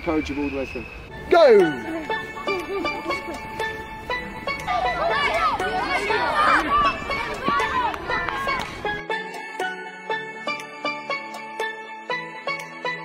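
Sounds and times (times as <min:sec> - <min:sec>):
background music: 0:00.0 - 0:13.0
children shouting: 0:04.4 - 0:08.8.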